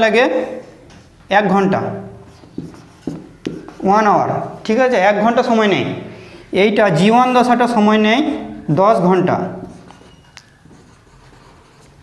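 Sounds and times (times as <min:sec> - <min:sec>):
marker scratching on whiteboard: 0:02.1 - 0:04.7, 0:09.6 - 0:12.0
marker tip tapping board: 0:02.4 - 0:03.8
marker squeak: 0:09.6 - 0:11.9.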